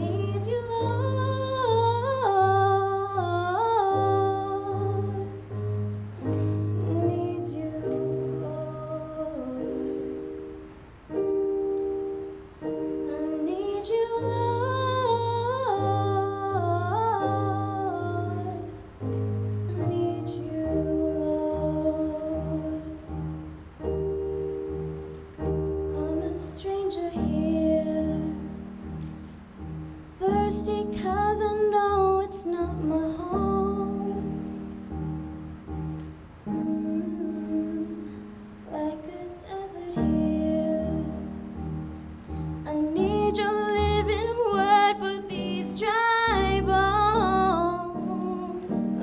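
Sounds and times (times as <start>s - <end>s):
electric keyboard chords: 0.0s - 49.0s.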